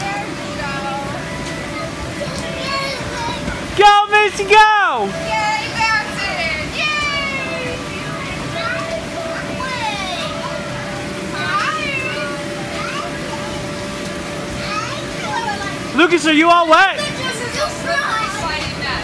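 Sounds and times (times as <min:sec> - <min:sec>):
children shouting and squealing: 0:01.6 - 0:03.8, 0:05.1 - 0:16.0, 0:16.6 - 0:18.8.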